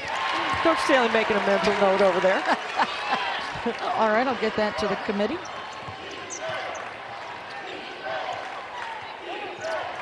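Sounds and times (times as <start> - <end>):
sneakers squeaking: 4.5 - 10.0
crowd chanting: 5.5 - 10.0.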